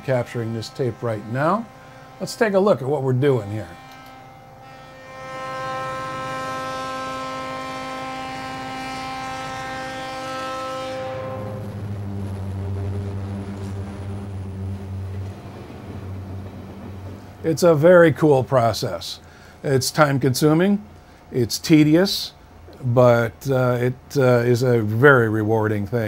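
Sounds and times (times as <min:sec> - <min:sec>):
locomotive air horn blast: 0:00.0 - 0:19.6
diesel engine rumbling: 0:11.0 - 0:19.6.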